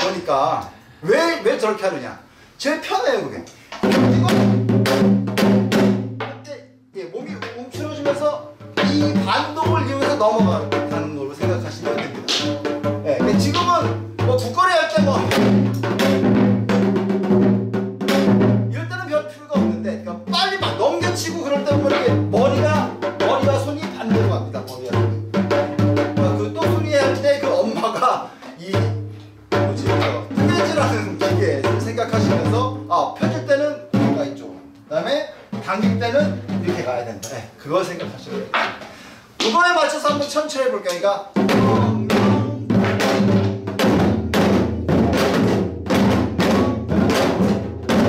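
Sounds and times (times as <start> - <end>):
man talking or chanting: 0.0 - 4.7, 6.2 - 15.5, 18.7 - 25.3, 26.0 - 38.6, 39.4 - 43.6.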